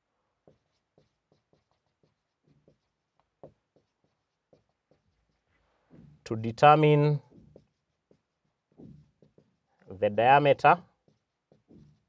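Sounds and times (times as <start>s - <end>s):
marker squeaking on whiteboard: 0.4s - 6.2s, 7.2s - 9.9s, 10.8s - 12.0s.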